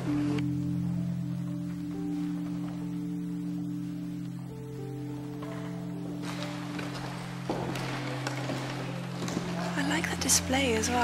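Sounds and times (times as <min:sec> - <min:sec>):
music with low sustained chords: 0:00.0 - 0:11.0.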